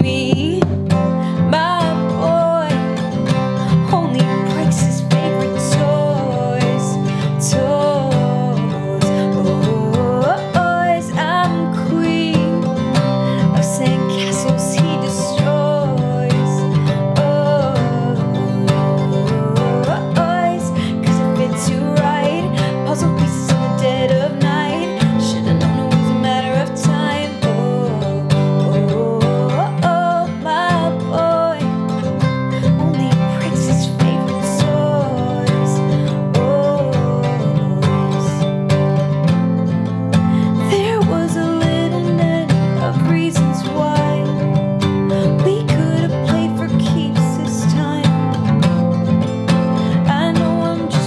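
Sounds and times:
woman singing with vibrato: 0.0 - 38.9, 40.2 - 51.0
acoustic guitar strumming: 0.0 - 51.0.

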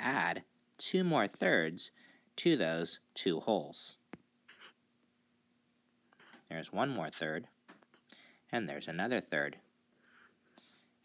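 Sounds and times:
faint steady hum: 0.0 - 11.0
stylus scratching on tablet: 4.4 - 4.8, 10.0 - 10.4.

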